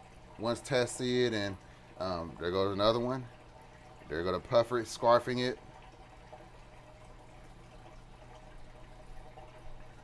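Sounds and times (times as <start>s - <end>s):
aquarium equipment hum: 0.0s - 10.0s
water trickling: 0.0s - 10.0s.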